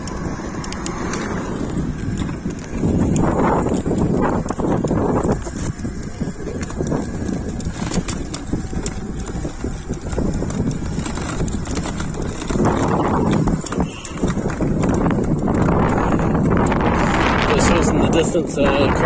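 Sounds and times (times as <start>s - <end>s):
bike rattles and knocks: 0.0s - 19.0s
wind buffeting microphone: 0.0s - 19.0s.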